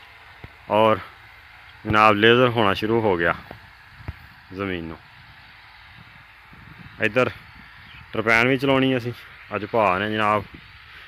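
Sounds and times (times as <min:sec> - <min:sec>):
water rushing along channel: 0:00.0 - 0:11.0.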